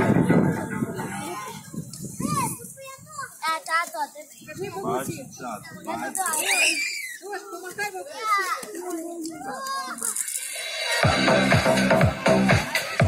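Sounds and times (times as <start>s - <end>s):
children chattering and calling: 0.0s - 13.0s
child's high rising cry: 6.4s - 7.3s.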